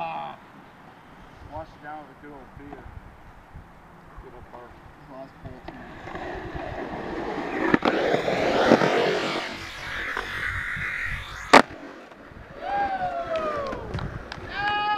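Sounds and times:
drawn-out falling tone: 6.1s - 13.1s.

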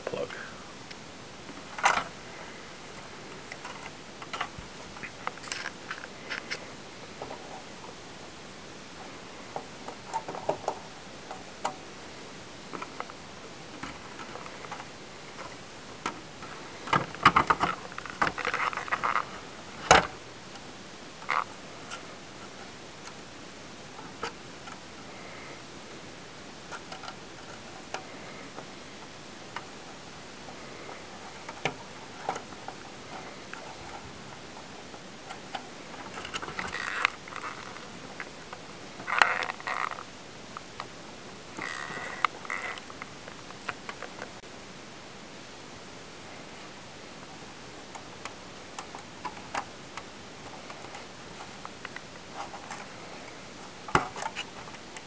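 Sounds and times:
steady hiss: 0.0s - 55.0s.

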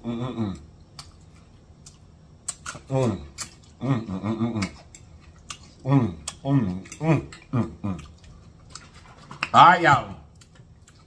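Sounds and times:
closed-mouth humming: 0.0s - 11.0s
person chewing wetly: 0.6s - 11.0s.

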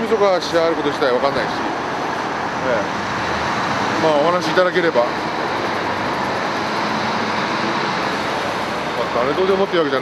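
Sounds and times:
airport background hum: 0.0s - 10.0s.

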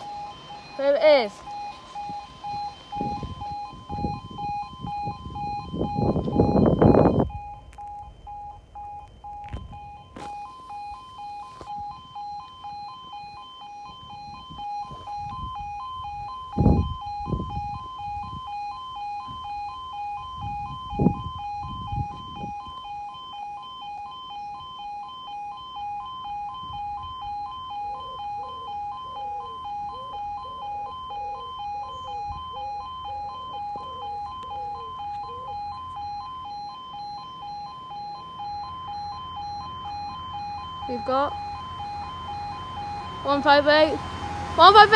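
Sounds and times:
two-tone crossing alarm: 0.0s - 44.9s.

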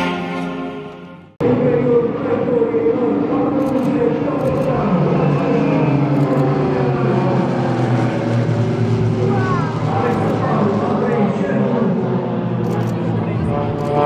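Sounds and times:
propeller planes droning: 0.0s - 14.0s.

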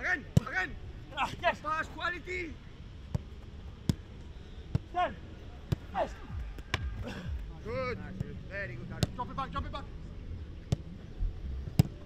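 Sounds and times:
football being kicked thuds: 11.6s - 12.0s.

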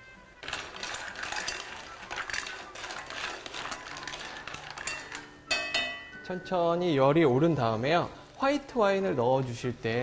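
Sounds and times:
shells clattering in a pot: 0.4s - 6.1s.

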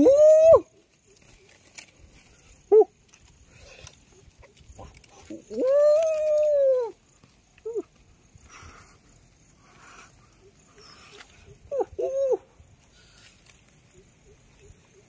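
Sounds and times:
man's high woo call: 0.0s - 0.7s, 11.7s - 12.6s.

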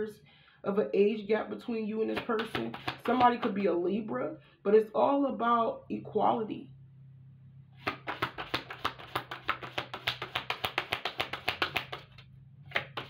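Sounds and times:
cards shuffled by hand: 2.1s - 3.5s, 7.8s - 13.0s.

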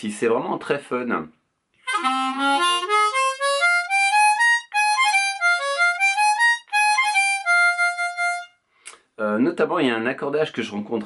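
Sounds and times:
harmonica playing quick melody: 1.9s - 8.6s.

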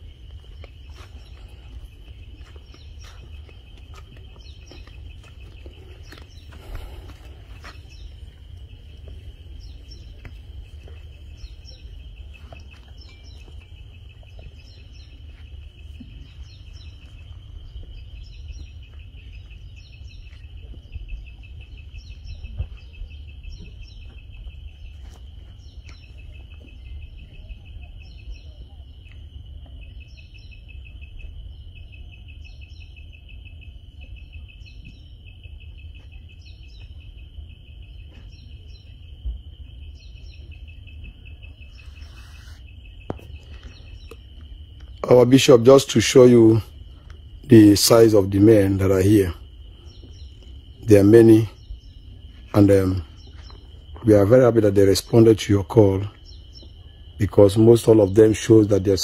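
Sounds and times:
low outdoor rumble: 0.0s - 57.8s
insects trilling: 0.0s - 59.0s.

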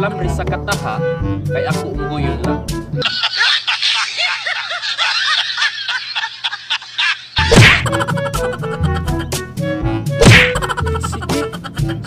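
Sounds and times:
background music with bass line: 0.0s - 3.0s, 7.4s - 12.0s
high-pitched laughter effect: 3.0s - 9.4s, 10.3s - 12.0s
loud whack sound effects: 7.4s - 8.0s, 10.2s - 10.7s.

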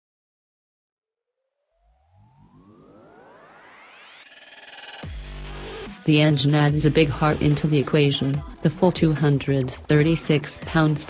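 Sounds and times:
synthesized rising whine: 1.4s - 5.9s
low tones sweeping up: 1.6s - 5.0s.

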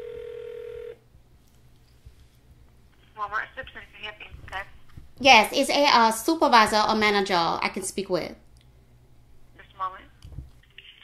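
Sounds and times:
person speaking over speakerphone: 3.2s - 5.4s.

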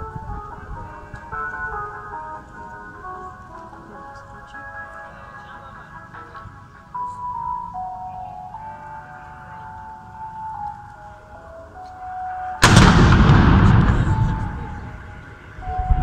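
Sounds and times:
simple tune of held notes: 0.0s - 12.7s, 14.0s - 16.0s
cannon firing loud boom: 12.6s - 15.4s.

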